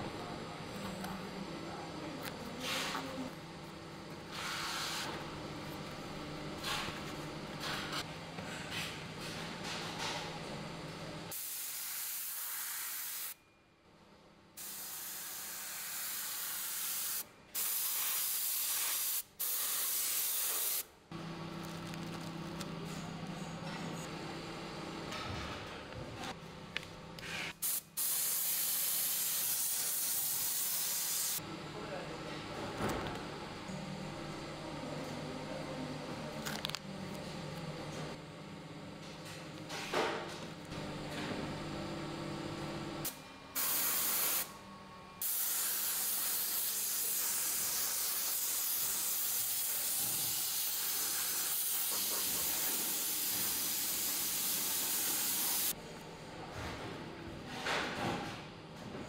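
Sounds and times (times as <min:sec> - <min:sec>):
low workshop hum: 0:00.0 - 0:59.0
spray gun hissing: 0:14.6 - 0:20.8, 0:27.6 - 0:31.4, 0:43.6 - 0:44.4, 0:45.2 - 0:55.7.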